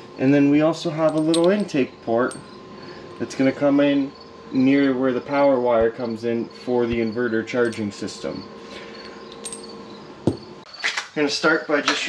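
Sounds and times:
crickets chirping: 0.0s - 11.8s.

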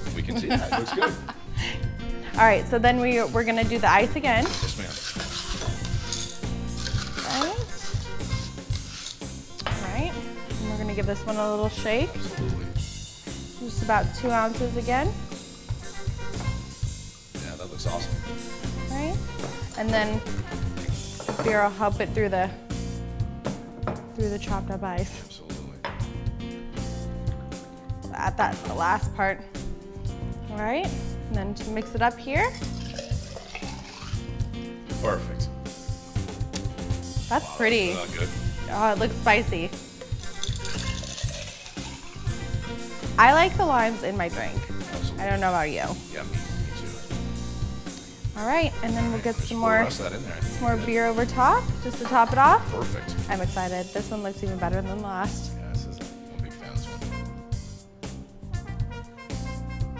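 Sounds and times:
background music with bass line: 0.0s - 59.9s
liquid pouring between glasses: 32.5s - 34.4s, 40.0s - 43.1s
ice clinking into a glass: 40.4s - 42.0s.

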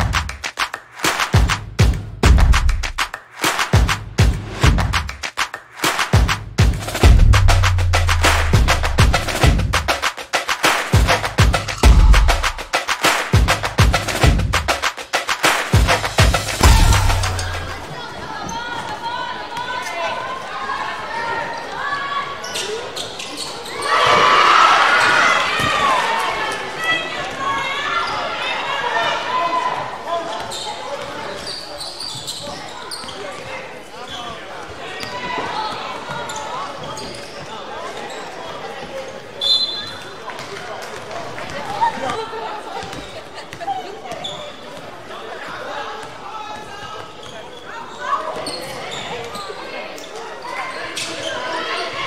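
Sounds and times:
spectator chatter and calls: 5.1s - 52.0s
crowd shouting: 10.6s - 13.8s, 15.4s - 22.3s.

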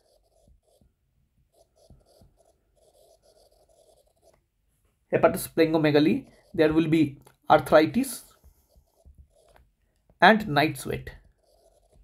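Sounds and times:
stylus scratching on glass screen: 0.0s - 12.0s.

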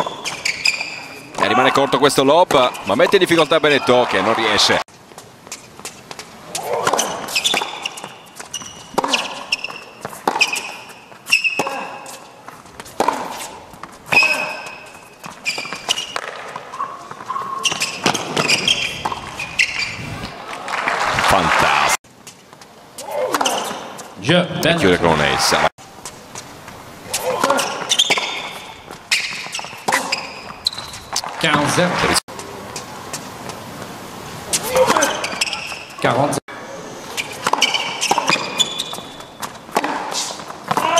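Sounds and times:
shoes squeaking on court: 0.0s - 3.7s, 4.9s - 20.2s, 22.1s - 24.2s, 26.0s - 31.7s, 32.4s - 36.3s, 37.0s - 40.9s
arena background noise: 0.0s - 40.9s
crowd noise: 1.0s - 4.8s, 16.5s - 22.0s, 24.2s - 27.7s
tennis ball bouncing: 5.4s - 19.8s, 27.1s - 31.3s, 37.3s - 40.9s
rackets striking tennis ball: 5.5s - 19.8s, 27.1s - 31.7s, 37.2s - 40.9s
short burst of voice: 21.1s - 22.0s.

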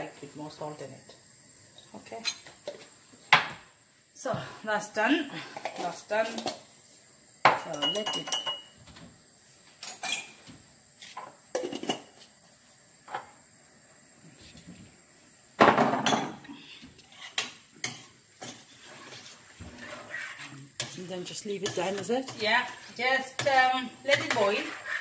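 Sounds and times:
utensils clinking on steel pot: 7.5s - 8.8s, 9.8s - 10.4s, 21.6s - 25.0s.

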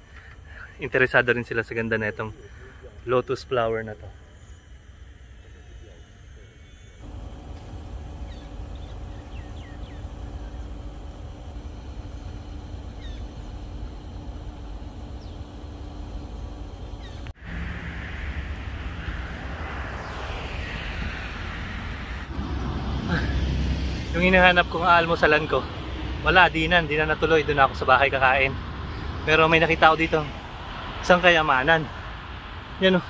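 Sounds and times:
river ambience: 0.0s - 33.0s
bird chirps: 8.2s - 10.9s, 12.8s - 13.6s, 15.1s - 15.6s, 16.8s - 17.3s
wind on microphone: 17.4s - 24.2s.

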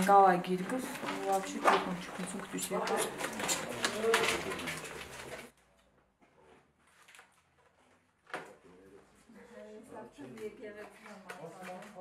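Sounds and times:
woman talking: 0.0s - 3.2s.

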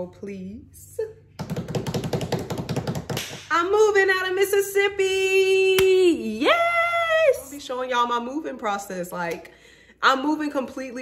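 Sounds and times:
hands drumming rapid taps: 1.4s - 3.4s.

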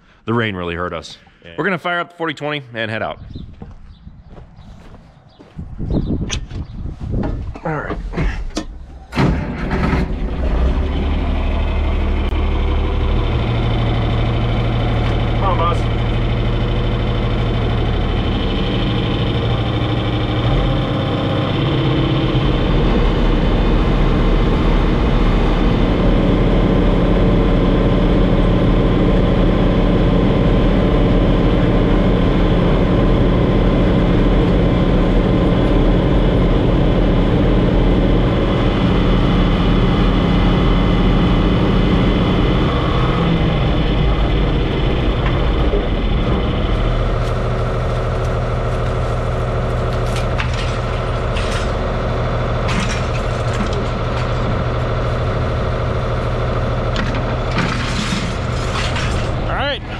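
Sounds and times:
tractor engine running: 3.6s - 59.9s.

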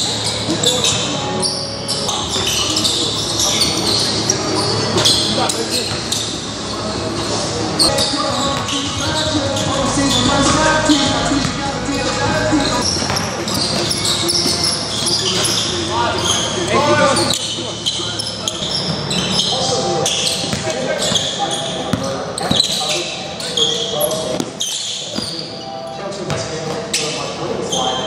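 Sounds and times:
players calling out: 0.0s - 25.6s
sneakers squeaking: 0.0s - 28.0s
basketball bouncing on wooden floor: 12.8s - 14.6s.

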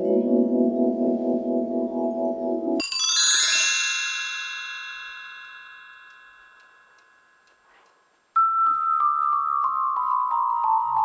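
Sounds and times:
music: 0.0s - 3.9s, 8.4s - 11.0s
bell-like chime: 2.8s - 7.8s.

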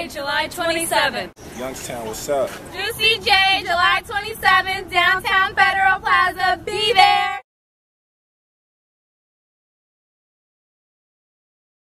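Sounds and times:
women chanting sing-song: 0.0s - 1.4s, 2.8s - 7.4s.

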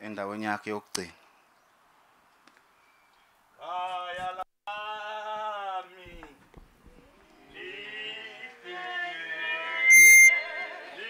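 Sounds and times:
voices singing: 7.0s - 11.0s
loud high-pitched steady tone: 9.8s - 10.3s.

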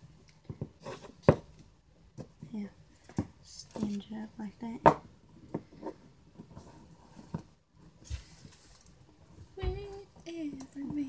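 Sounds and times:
soft low thump: 9.6s - 10.1s.

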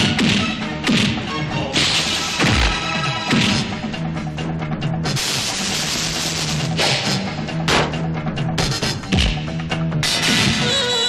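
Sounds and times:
action film music with drums: 0.0s - 11.0s
sharp hit: 1.8s - 3.8s.

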